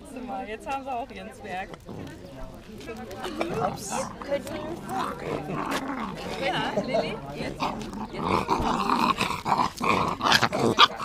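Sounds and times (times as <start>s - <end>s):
puppies growling: 3.3s - 11.0s.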